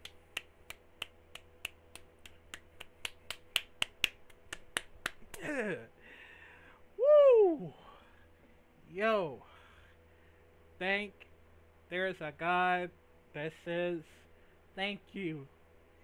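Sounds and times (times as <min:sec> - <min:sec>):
finger snapping: 0:00.0 - 0:05.5
man exclaiming: 0:05.4 - 0:05.9, 0:07.0 - 0:08.0.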